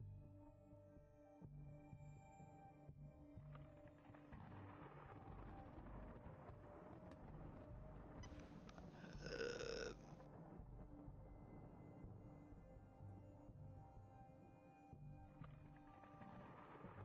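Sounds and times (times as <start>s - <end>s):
faint ambient music: 0.0s - 17.0s.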